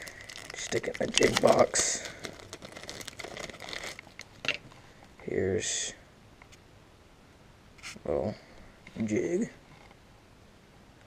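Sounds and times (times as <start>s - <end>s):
plastic packaging crinkling: 0.0s - 4.8s.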